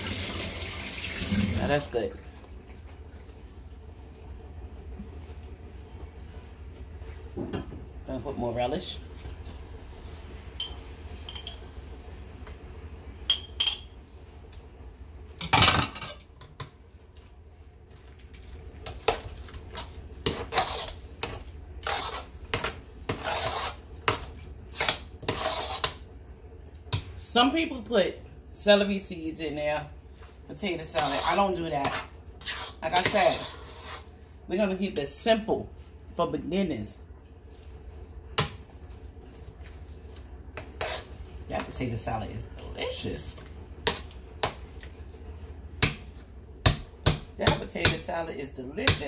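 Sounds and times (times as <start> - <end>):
spoon clinking: 13.3 - 13.9
spoon scraping metal pot: 20.2 - 23.8, 24.7 - 26.0, 30.8 - 34.1, 40.6 - 41.1.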